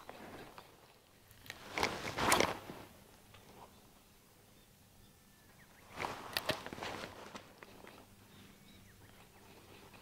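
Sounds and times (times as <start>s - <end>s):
rustling: 0.0s - 3.7s, 5.8s - 8.1s.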